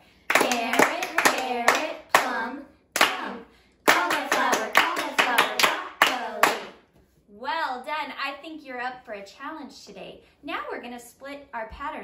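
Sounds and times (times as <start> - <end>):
people clapping in time: 0.3 - 2.4, 3.0 - 3.3, 3.9 - 6.8
people chanting: 0.3 - 6.8.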